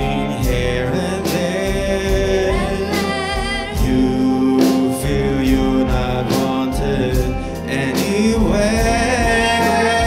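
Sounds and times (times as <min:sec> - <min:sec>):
concert band playing: 0:00.0 - 0:10.0
person singing with vibrato: 0:00.0 - 0:10.0.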